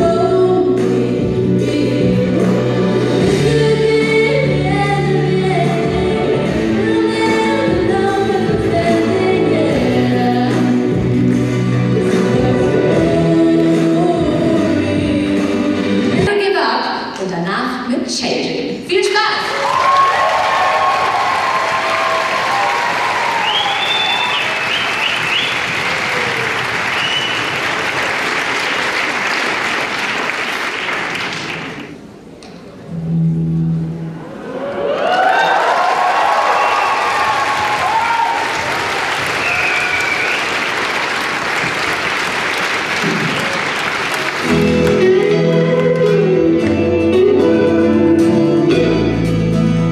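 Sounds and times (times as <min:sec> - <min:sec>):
audience applauding and cheering: 0:19.4 - 0:32.0, 0:34.3 - 0:46.3
whoops in crowd: 0:19.5 - 0:27.5, 0:34.4 - 0:40.7
electric guitar playing: 0:44.4 - 0:49.9.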